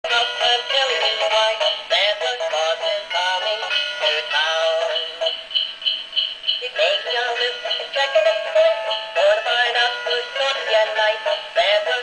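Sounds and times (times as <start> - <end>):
sung christmas song through small speaker: 0.0 - 12.0.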